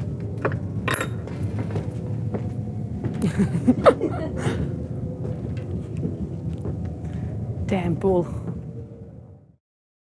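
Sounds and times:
steady low hum: 0.0s - 9.6s
metal ring clinking on hook: 0.8s - 1.2s.

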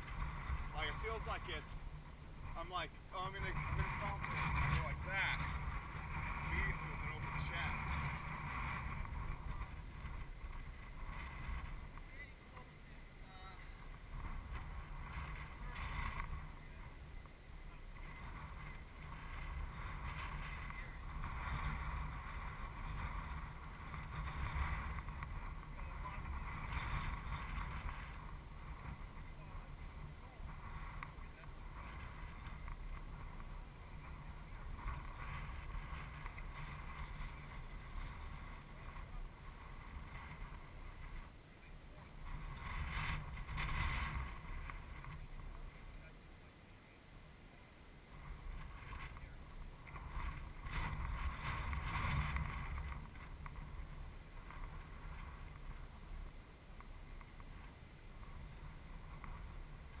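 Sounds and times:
wind rumbling on microphone: 0.0s - 60.0s
faint distant voices: 9.0s - 52.4s.

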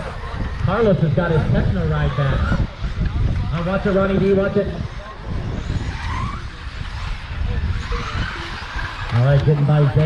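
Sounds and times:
electric motors whining: 0.0s - 10.0s
steady noisy rush: 0.0s - 10.0s.

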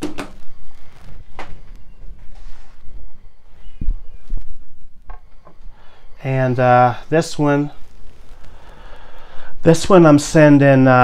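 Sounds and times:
record handling thumps: 0.0s - 8.6s.

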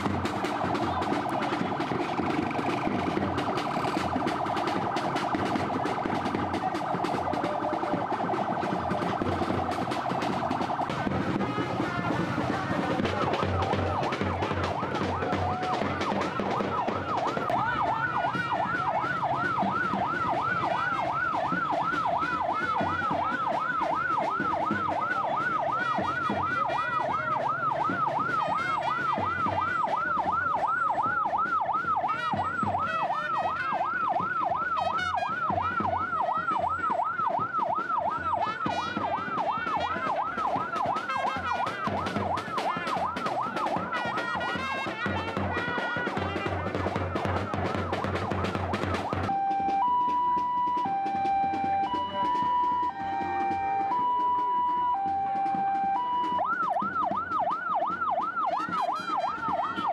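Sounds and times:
ambulance siren wailing: 0.0s - 59.9s.

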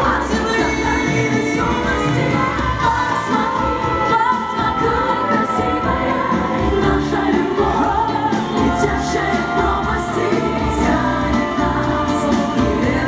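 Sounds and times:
band backing with steady beat: 0.0s - 13.0s
women singing in harmony: 0.0s - 13.0s.

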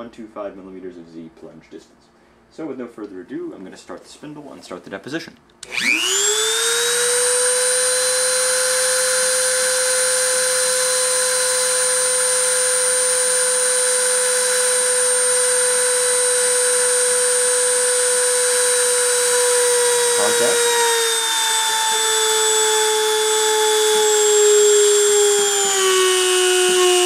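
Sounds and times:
rotary tool high whine: 5.6s - 27.0s.

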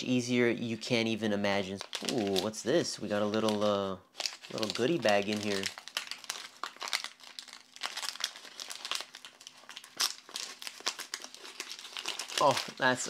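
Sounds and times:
paper bag crinkling: 1.7s - 13.0s.

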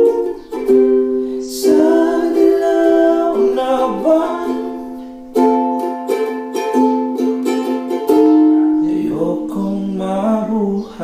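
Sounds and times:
ukulele strumming: 0.0s - 11.0s.

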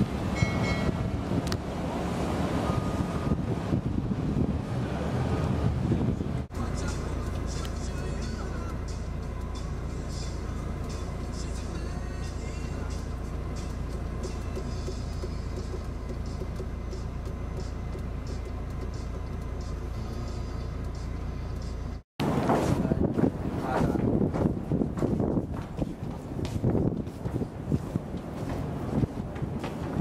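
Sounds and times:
gusty wind on microphone: 0.0s - 6.5s, 22.2s - 30.0s
engine and road rumble in car cabin: 0.0s - 30.0s.

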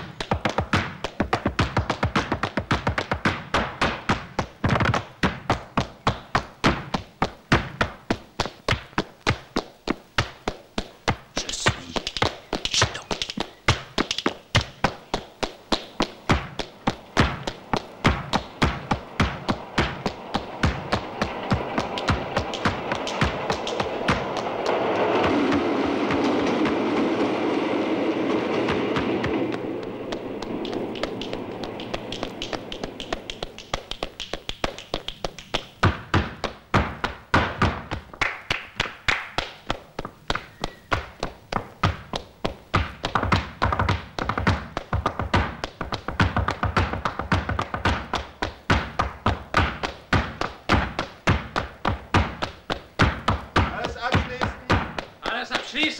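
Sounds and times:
shoes stamping on wooden boards: 0.0s - 27.4s, 28.4s - 55.9s
rushing noise: 17.6s - 34.2s.

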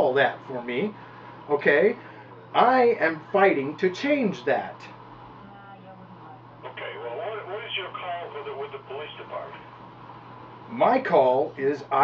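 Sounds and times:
person talking over telephone: 6.6s - 9.6s.

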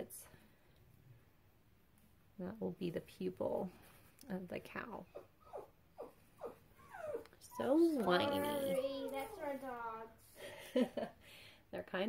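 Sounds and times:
dogs whining: 5.1s - 9.4s.

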